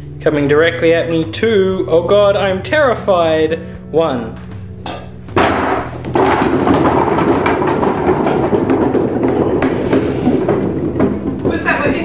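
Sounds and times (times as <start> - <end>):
rubber balls bouncing on wood: 4.3 - 12.0.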